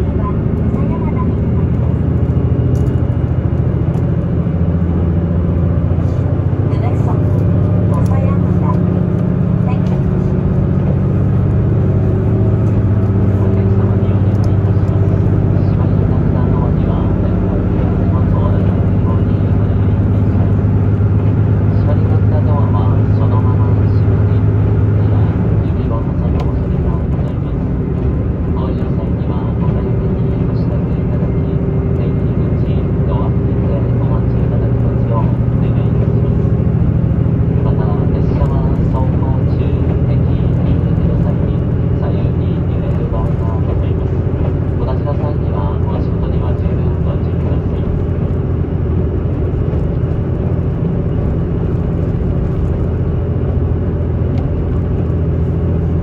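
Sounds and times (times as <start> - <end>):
train engine drone: 0.0 - 56.0.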